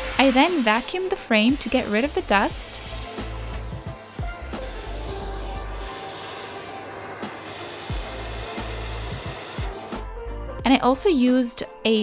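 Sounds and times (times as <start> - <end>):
vacuum cleaner running: 0.0 - 10.4
background music: 0.0 - 12.0.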